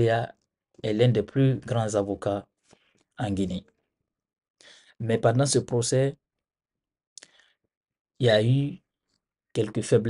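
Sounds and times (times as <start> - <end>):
man speaking: 0.0 - 2.5, 3.2 - 3.7, 5.0 - 6.2, 8.2 - 8.9, 9.6 - 10.0.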